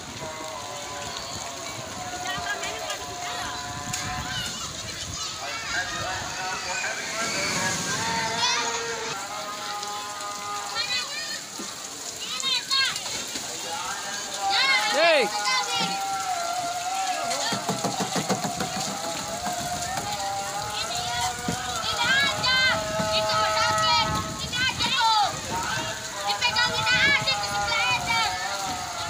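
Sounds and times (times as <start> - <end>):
water splashing: 0.0 - 29.0
children shouting and squealing: 0.4 - 13.4, 14.0 - 29.0.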